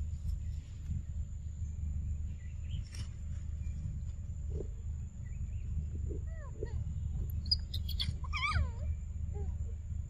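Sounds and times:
low hum: 0.0s - 10.0s
monkey chirping and whining: 7.4s - 9.6s.

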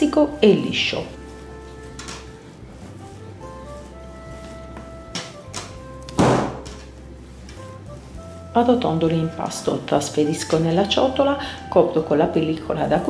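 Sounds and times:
soft background music: 0.0s - 13.0s
dough slapped onto work surface: 5.2s - 6.8s.

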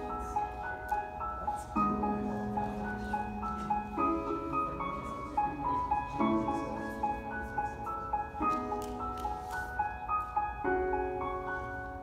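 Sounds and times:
slow gentle instrumental music: 0.0s - 12.0s.

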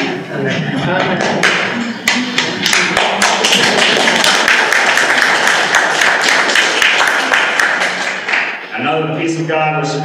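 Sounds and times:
crowd applauding: 1.2s - 8.7s.

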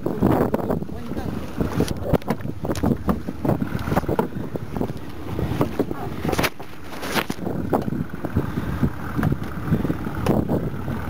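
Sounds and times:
voices: 0.0s - 2.5s
wind noise on microphone: 0.0s - 11.0s
knocks and clatter from handling: 1.8s - 8.0s.

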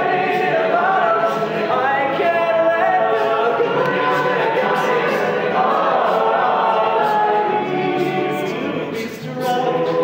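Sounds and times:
male a cappella singing: 0.0s - 10.0s.

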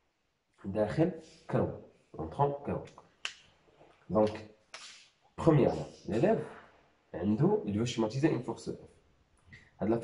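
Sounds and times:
man speaking: 0.6s - 2.9s, 4.1s - 4.4s, 5.4s - 8.9s, 9.8s - 10.0s.

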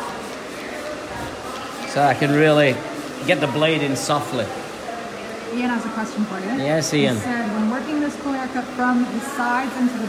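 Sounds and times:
spray bottle misting water: 0.0s - 4.4s
faint background voices: 0.0s - 10.0s.

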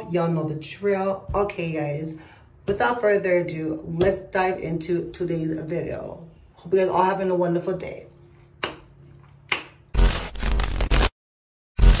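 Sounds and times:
glitchy static sound effect: 10.0s - 11.1s, 11.8s - 12.0s.

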